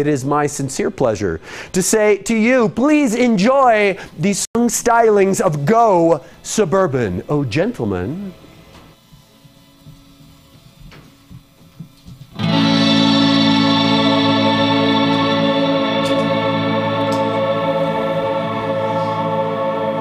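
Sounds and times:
rock band sustained chord: 12.4s - 20.0s.

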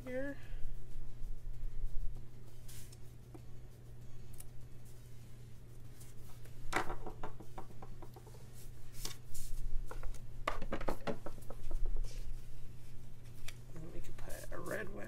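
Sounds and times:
low electrical hum: 0.0s - 15.0s
paper rustling: 8.6s - 10.2s.

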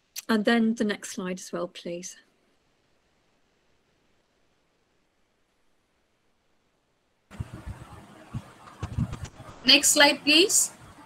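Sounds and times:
background hiss: 0.0s - 11.0s
low thuds: 7.3s - 9.6s.

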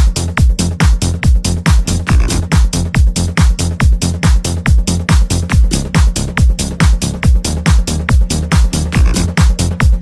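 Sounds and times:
kick drum: 0.0s - 10.0s
rolling bass: 0.0s - 10.0s.

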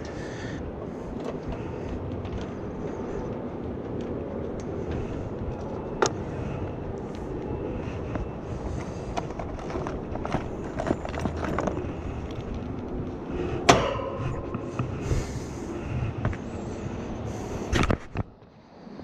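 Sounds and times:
steady background noise: 0.0s - 19.0s.

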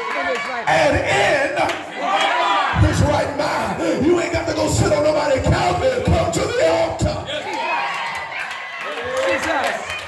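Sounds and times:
congregation calling out: 0.0s - 8.0s
preacher's voice through microphone: 0.6s - 1.9s, 2.7s - 7.4s.

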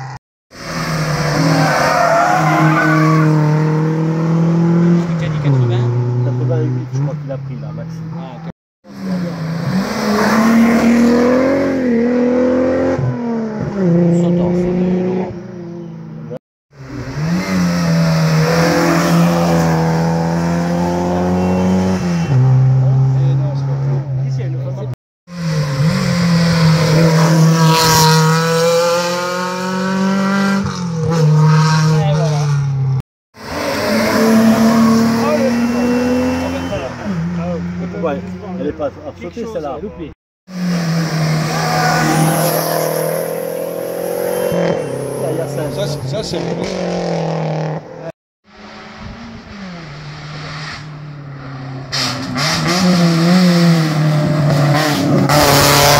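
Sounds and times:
race car engines revving: 0.0s - 55.9s.

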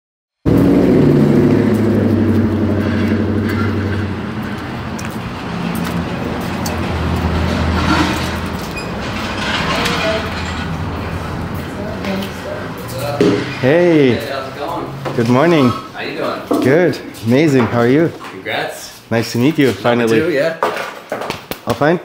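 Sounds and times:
street noise: 0.4s - 21.9s
vehicle engine running: 0.5s - 15.4s.

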